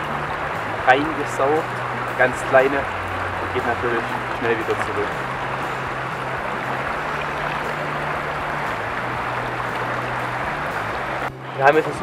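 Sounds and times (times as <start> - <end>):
stream water flowing: 0.0 - 12.0.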